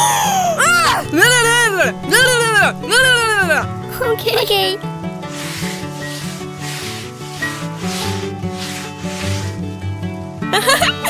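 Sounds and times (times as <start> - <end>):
soft background music: 0.0 - 11.0
broom sweeping floor: 5.2 - 9.8.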